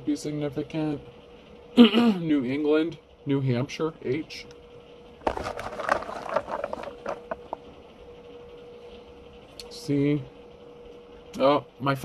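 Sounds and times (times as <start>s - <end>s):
faint steady hum: 0.0s - 12.0s
rustling and light clicks: 5.2s - 7.6s.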